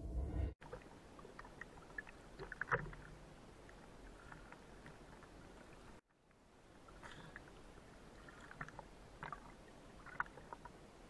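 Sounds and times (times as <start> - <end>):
water splashing and lapping: 0.6 - 11.0.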